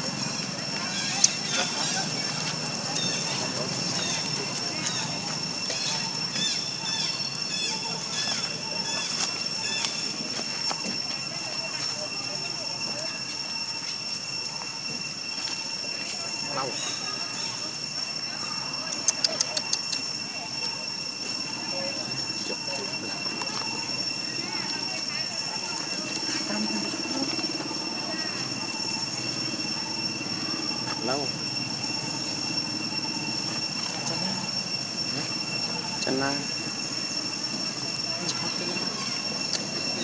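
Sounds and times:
high-pitched insect drone: 0.0 - 40.0.

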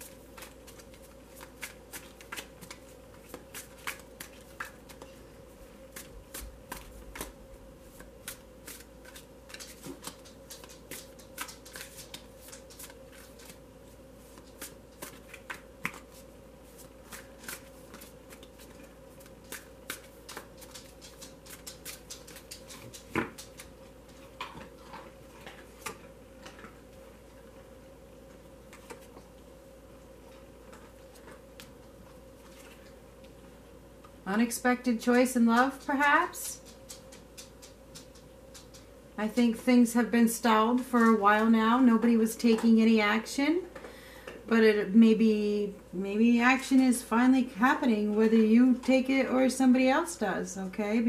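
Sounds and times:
cards being shuffled: 0.0 - 5.1, 5.9 - 13.6, 14.2 - 23.8
faint steady hum: 0.0 - 51.0.

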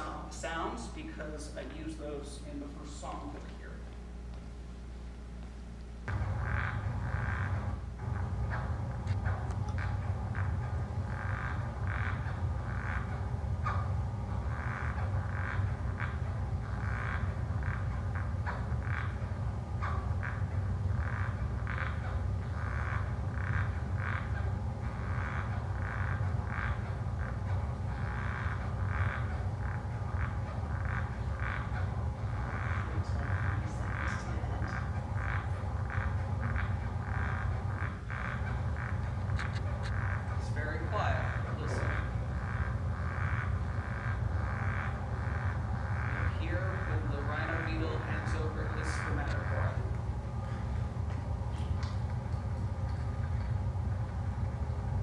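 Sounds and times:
steady low hum: 0.0 - 55.0
beetle chirping pulses: 6.1 - 50.4.

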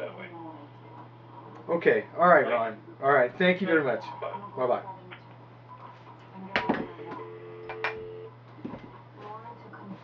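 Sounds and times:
telephone dial tone: 7.0 - 8.3.

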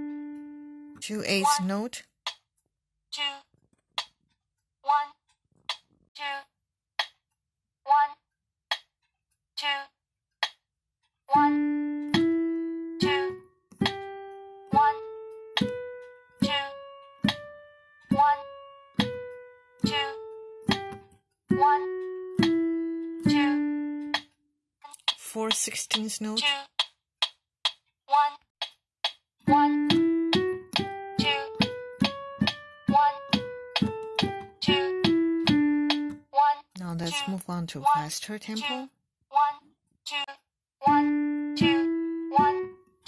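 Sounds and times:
piano notes ringing: 0.0 - 1.0, 11.4 - 24.2, 29.5 - 36.3, 40.8 - 43.0
person counting: 1.0 - 2.5, 3.1 - 4.2, 4.8 - 7.2, 9.6 - 10.6, 13.0 - 14.0, 14.7 - 15.8, 16.4 - 19.1, 19.8 - 22.6, 23.2 - 42.8
electronic metronome clicking: 28.6 - 32.6, 33.2 - 36.2.

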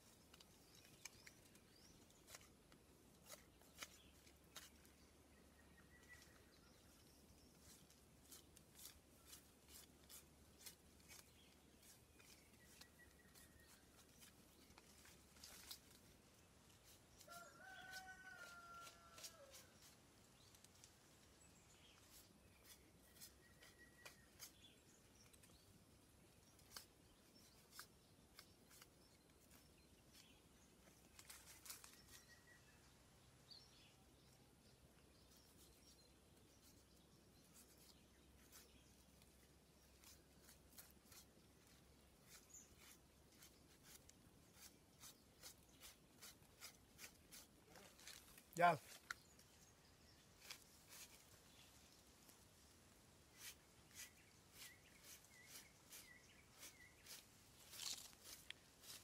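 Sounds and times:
rooster crowing: 17.3 - 19.6.

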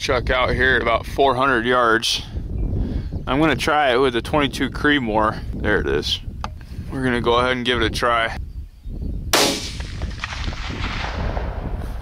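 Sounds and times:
rifle shot with rolling echo: 9.3 - 12.0.

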